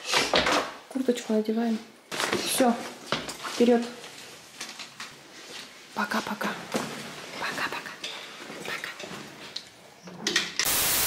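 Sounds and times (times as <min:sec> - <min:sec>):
tv static hiss: 0:10.6 - 0:11.0.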